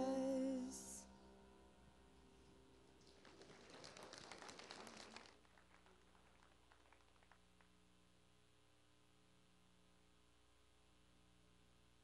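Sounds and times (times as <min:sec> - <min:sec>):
congregation applause: 0:03.0 - 0:07.4.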